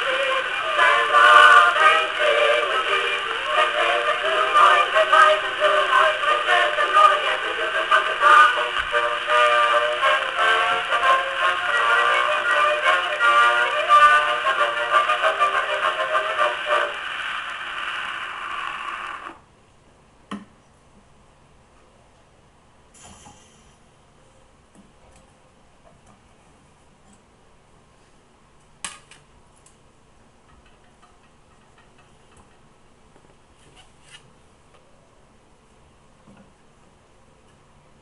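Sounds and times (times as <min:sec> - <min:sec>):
phonograph record music: 0:00.0 - 0:19.5
record surface hiss: 0:00.0 - 0:38.0.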